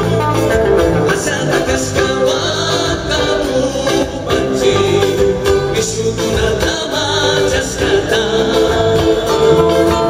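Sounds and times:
drums: 0:00.0 - 0:10.0
group singing: 0:00.0 - 0:10.0
strummed acoustic guitars: 0:00.0 - 0:10.0.

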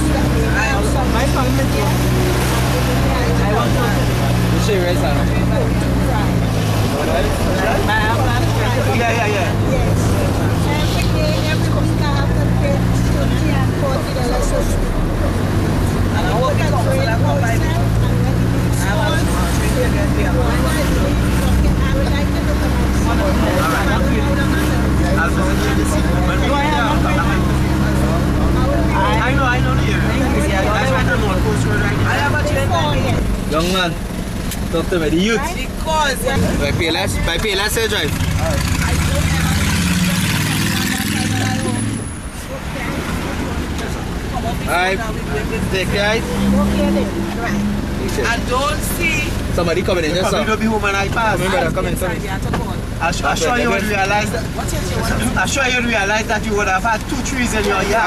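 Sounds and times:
minibus engine drone: 0:00.0 - 0:58.0
people talking: 0:00.0 - 0:58.0.

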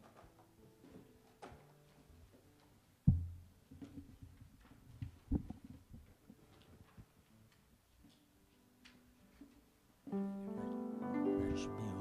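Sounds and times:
faint low thumps and knocks: 0:03.1 - 0:06.1.

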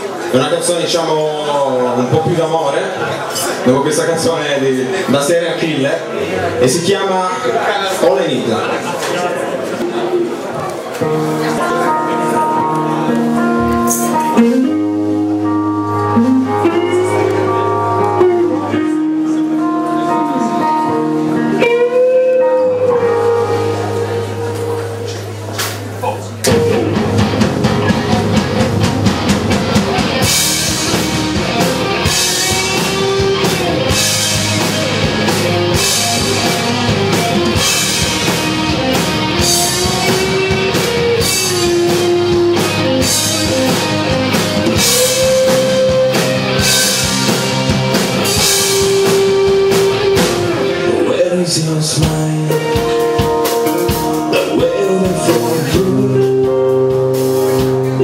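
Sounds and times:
rock band playing live: 0:00.0 - 0:58.0.

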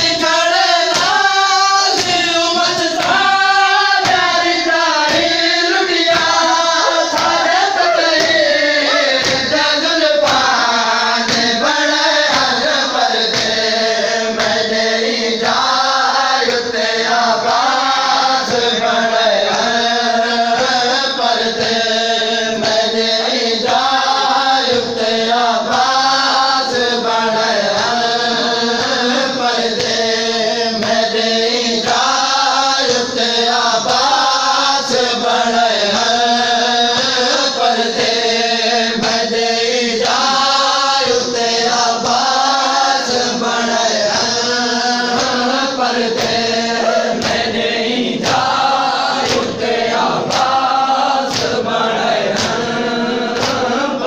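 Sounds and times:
men chanting a lament: 0:00.0 - 0:54.0.

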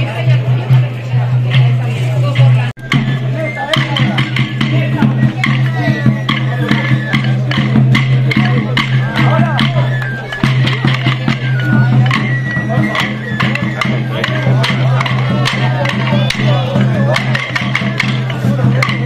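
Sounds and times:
crowd voices: 0:00.0 - 0:19.0
pipe and drum music: 0:00.0 - 0:19.0
wooden sticks clacking: 0:03.6 - 0:19.0.

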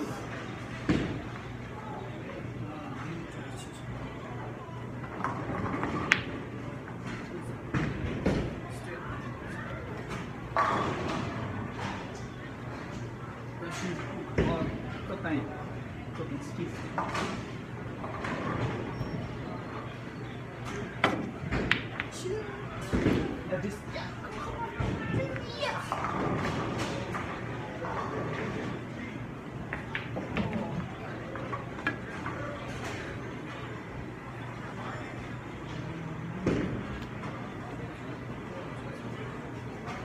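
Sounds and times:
background chatter: 0:00.0 - 0:40.0
pool balls clicking: 0:05.0 - 0:06.4, 0:21.0 - 0:22.2, 0:29.6 - 0:32.4
pool balls clacking: 0:29.6 - 0:33.2.

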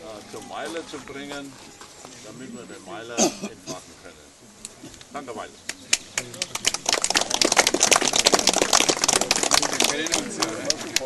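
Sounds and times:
voices talking: 0:00.0 - 0:11.0
crowd clapping: 0:05.6 - 0:11.0.

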